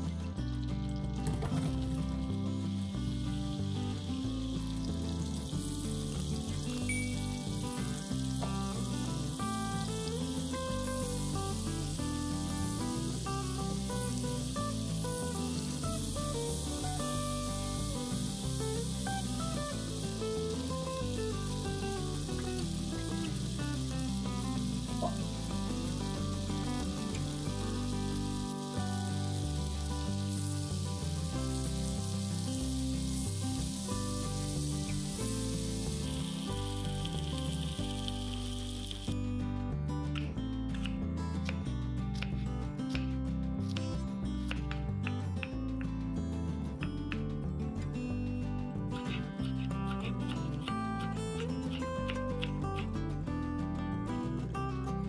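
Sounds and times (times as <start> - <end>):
background music: 0.0 - 55.0
mushrooms sizzling in a pan: 1.5 - 39.2.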